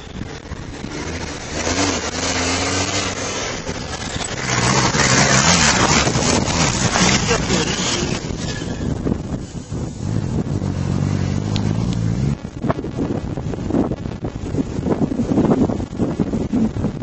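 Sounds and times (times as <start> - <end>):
tyre and dirt noise: 0.0 - 17.0
van engine racing under load: 0.0 - 17.0.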